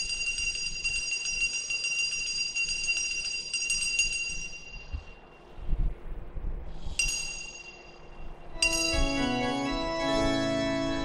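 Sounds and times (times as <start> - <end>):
altar bells jingling: 0.0 - 5.4, 7.0 - 11.0.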